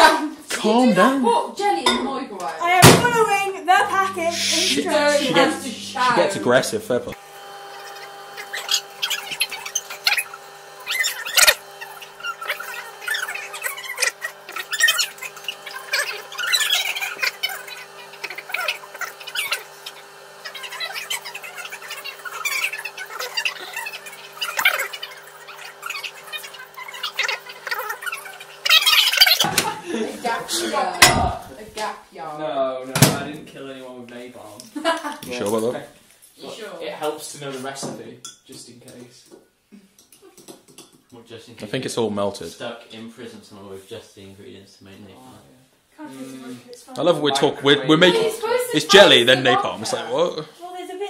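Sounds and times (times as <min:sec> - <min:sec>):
microwave oven humming: 0:02.6 - 0:31.6.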